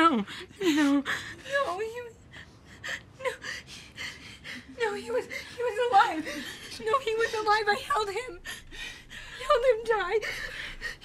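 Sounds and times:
woman sobbing: 0.0s - 11.0s.

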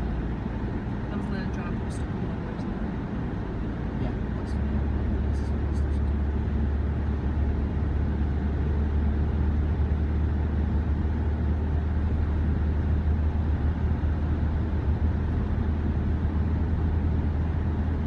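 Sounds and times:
car interior road rumble: 0.0s - 18.0s.

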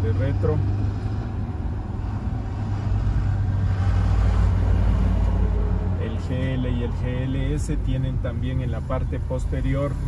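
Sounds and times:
car cabin road and engine rumble: 0.0s - 10.0s.

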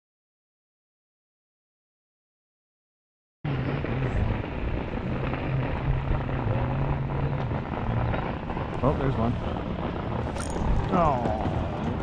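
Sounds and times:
motorboat engine droning: 3.5s - 12.0s.

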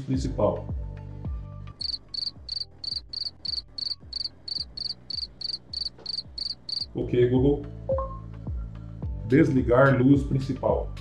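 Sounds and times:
crickets chirping: 1.8s - 6.9s.

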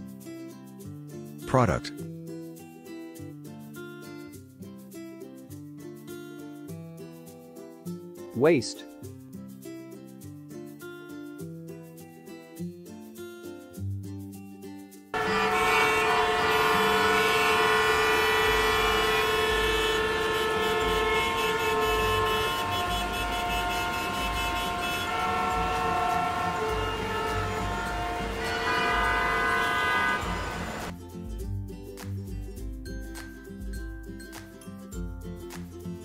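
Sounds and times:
car horns honking: 15.2s - 30.9s
traffic rumble: 15.2s - 30.9s.

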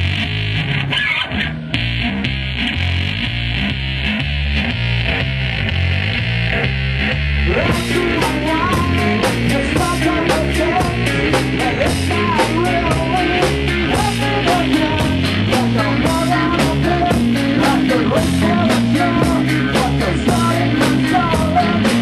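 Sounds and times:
higher guitar line: 0.0s - 22.0s
live rock band playing: 0.0s - 22.0s.

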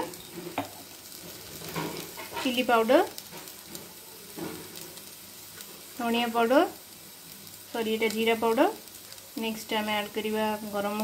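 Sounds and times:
food sizzling in hot oil: 0.0s - 11.0s.

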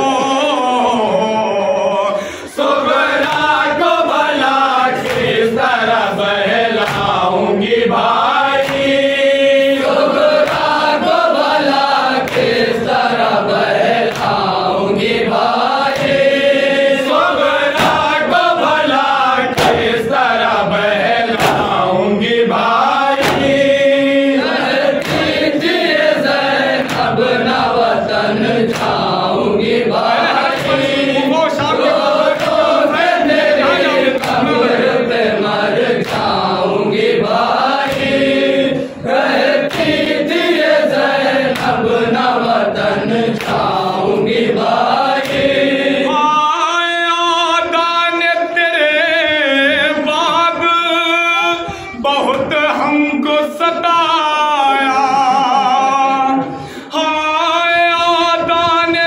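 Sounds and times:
man chanting into a microphone: 0.0s - 2.4s, 30.0s - 35.1s, 46.0s - 59.0s
men chanting in unison: 0.0s - 59.0s
hands striking chests: 19.5s - 20.0s, 21.4s - 21.8s.

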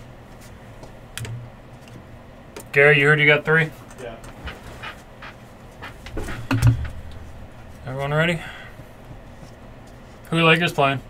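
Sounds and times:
person breathing quietly: 8.3s - 9.5s.

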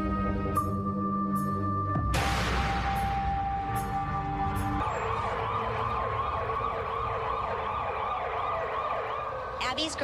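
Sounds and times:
siren wailing: 3.2s - 10.0s.

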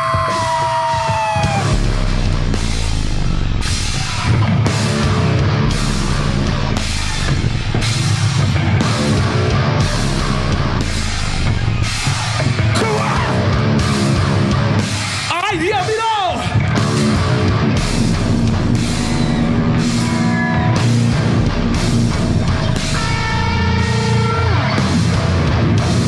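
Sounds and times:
rock band playing heavy: 0.0s - 26.0s.

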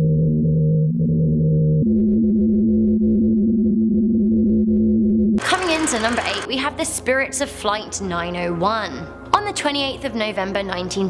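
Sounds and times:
ice shelf low humming tones: 5.4s - 6.5s.

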